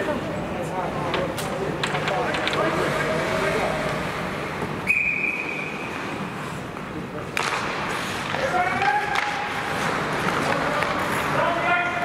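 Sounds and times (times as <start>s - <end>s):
murmur of voices: 0.0s - 5.6s
referee's whistle blast: 4.8s - 5.8s.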